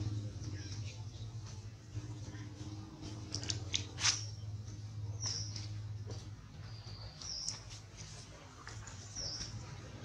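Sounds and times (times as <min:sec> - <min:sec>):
low hum: 0:00.0 - 0:07.6
animal chirps and clicks: 0:06.9 - 0:07.7.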